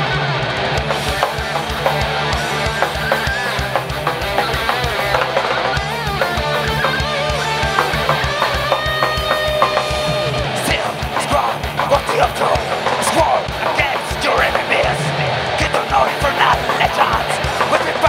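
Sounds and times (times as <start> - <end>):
bass guitar: 0.0 - 18.0
distorted electric guitars: 0.0 - 18.0.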